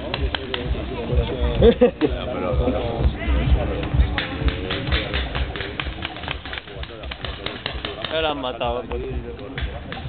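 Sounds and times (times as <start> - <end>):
voices: 0.0 - 10.0
paintball markers firing: 4.1 - 10.0.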